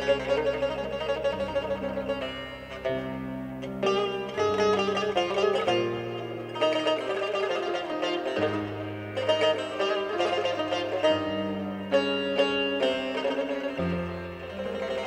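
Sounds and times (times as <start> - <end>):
plucked lute melody: 0.0 - 15.0.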